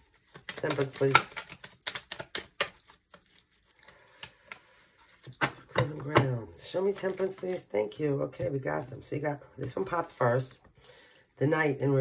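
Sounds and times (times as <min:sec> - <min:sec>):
cards being shuffled: 0:00.0 - 0:08.6.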